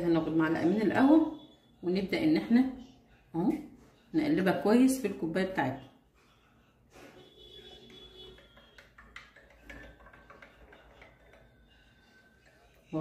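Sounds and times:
spoon stirring in glass mug: 7.2s - 13.0s
spoon tapping glass: 7.8s - 12.9s.

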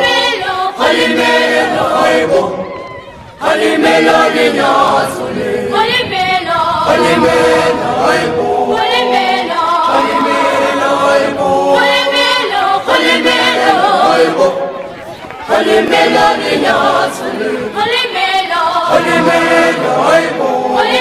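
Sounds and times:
choir singing unaccompanied: 0.0s - 21.0s.

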